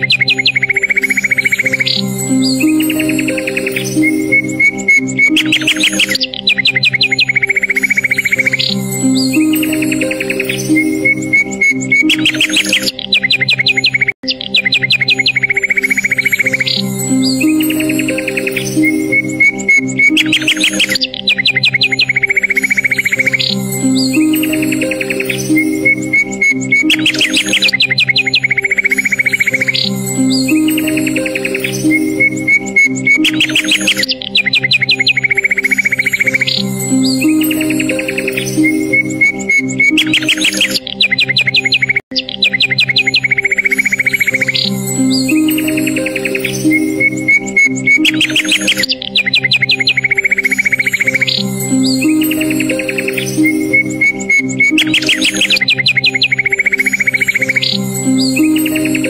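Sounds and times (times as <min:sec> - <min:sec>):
birdsong chirps and trills: 0:00.0 - 0:59.0.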